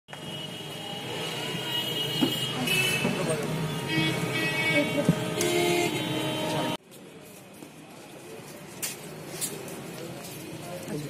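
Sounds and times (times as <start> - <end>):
traffic rumble: 0.1 - 11.0.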